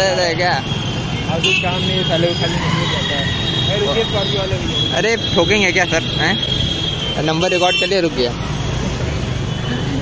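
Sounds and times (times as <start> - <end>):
vehicle engines rumbling: 0.0 - 10.0.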